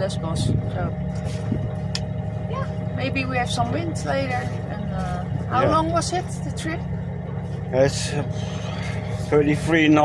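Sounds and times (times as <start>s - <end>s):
boat engine droning: 0.0s - 10.0s.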